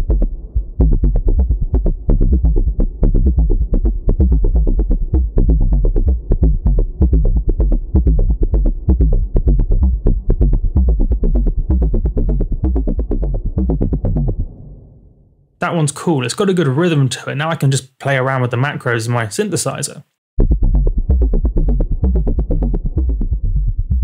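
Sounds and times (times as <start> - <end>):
techno synth bassline: 0.0 - 14.6, 20.4 - 24.0.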